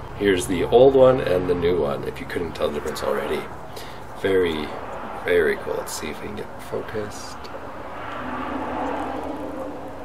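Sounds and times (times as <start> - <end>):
steady droning noise: 0.0 - 10.0.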